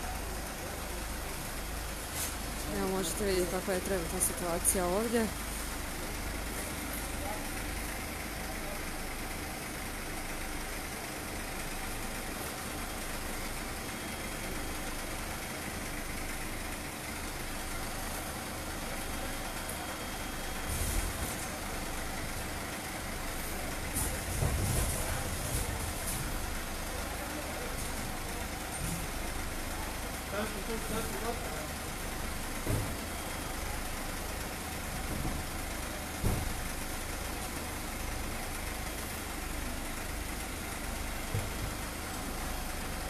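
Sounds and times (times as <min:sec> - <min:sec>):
vehicle engine idling: 0:00.0 - 0:43.0.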